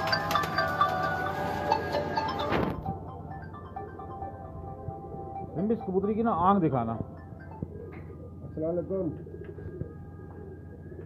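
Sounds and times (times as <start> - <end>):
pigeons cooing: 7.3 - 11.0.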